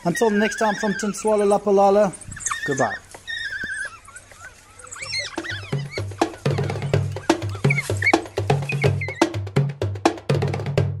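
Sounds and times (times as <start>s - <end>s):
wild dogs twittering: 0.0s - 9.6s
percussive music with steady beat: 5.4s - 11.0s.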